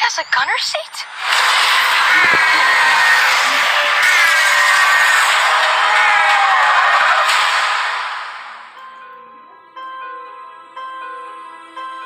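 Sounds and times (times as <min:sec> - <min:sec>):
dense music and sound effects: 0:01.0 - 0:08.8.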